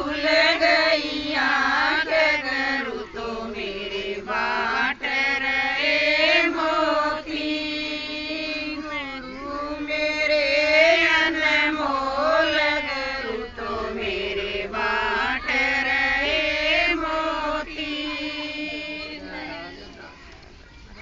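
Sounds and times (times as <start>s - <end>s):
women singing devotional song: 0.0s - 20.6s.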